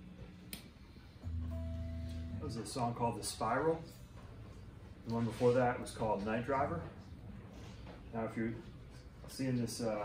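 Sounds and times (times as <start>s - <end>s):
electric jazz guitar chord ringing: 1.2s - 3.4s
low steady tone: 1.2s - 4.1s.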